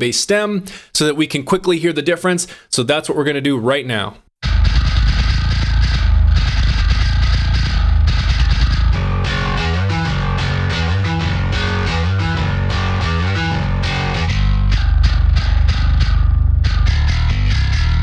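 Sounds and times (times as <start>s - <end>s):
metal bass guitar playing: 4.4s - 18.0s.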